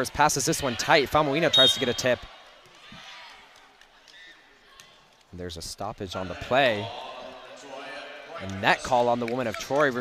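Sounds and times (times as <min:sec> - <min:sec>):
commentator speaking: 0:00.0 - 0:02.3
faint arena crowd noise: 0:00.0 - 0:10.0.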